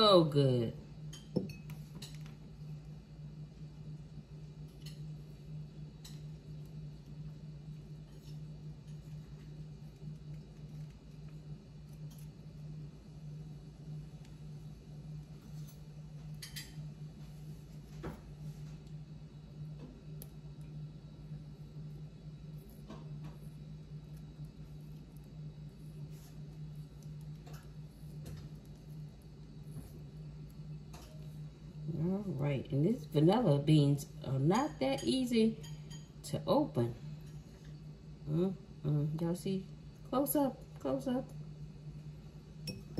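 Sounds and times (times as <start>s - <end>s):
steady low hum: 0.0s - 42.9s.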